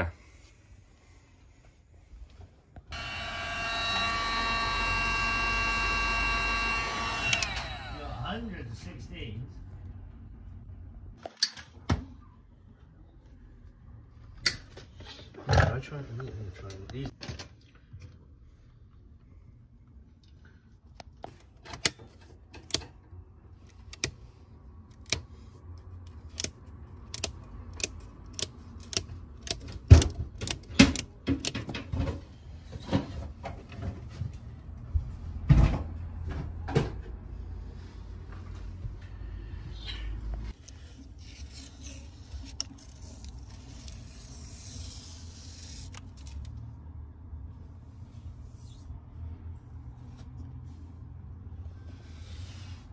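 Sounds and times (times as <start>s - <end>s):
sharp clicks: 26.3s - 31.6s.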